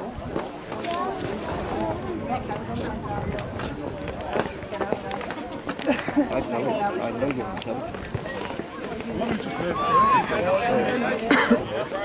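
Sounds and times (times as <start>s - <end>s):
players and spectators shouting: 9.1s - 11.9s.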